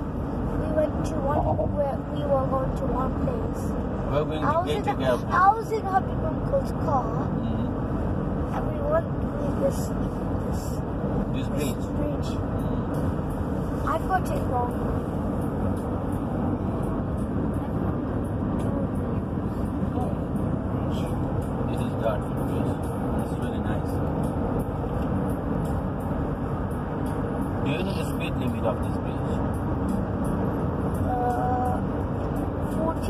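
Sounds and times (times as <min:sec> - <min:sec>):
car cabin road and engine noise: 0:00.0 - 0:33.0.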